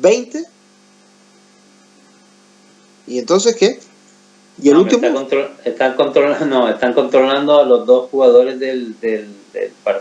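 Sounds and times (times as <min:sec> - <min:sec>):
low electrical hum: 0:00.0 - 0:10.0
faint hiss: 0:01.2 - 0:10.0.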